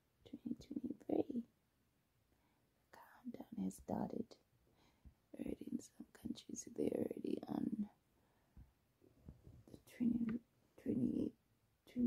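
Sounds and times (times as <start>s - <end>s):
woman speaking softly: 0.2s - 1.5s, 3.0s - 4.4s, 5.4s - 8.0s, 9.7s - 12.0s.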